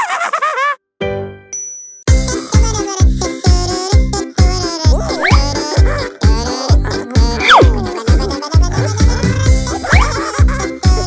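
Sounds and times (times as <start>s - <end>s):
jingle phrase with sliding pitch: 7.4s - 7.8s.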